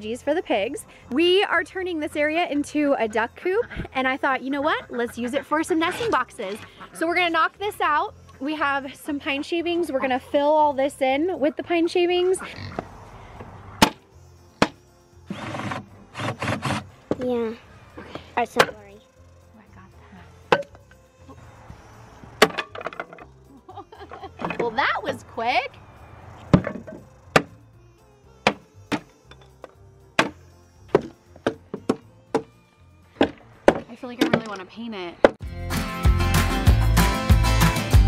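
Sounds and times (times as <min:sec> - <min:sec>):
wood scraping: 0:12.3 - 0:18.9, 0:20.4 - 0:23.4, 0:24.0 - 0:27.6, 0:28.4 - 0:34.7
rubber mallet knocking wood: 0:13.8 - 0:14.0, 0:14.6 - 0:14.8, 0:26.5 - 0:27.6, 0:28.4 - 0:32.6, 0:33.2 - 0:34.5
mallet knocking on wooden box: 0:28.4 - 0:29.1, 0:31.0 - 0:32.5.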